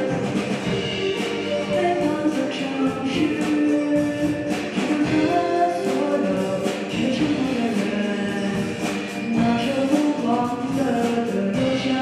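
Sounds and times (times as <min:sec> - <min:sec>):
drum kit: 0:00.0 - 0:12.0
electric guitars: 0:00.0 - 0:12.0
keyboard: 0:00.0 - 0:12.0
person singing: 0:00.0 - 0:12.0.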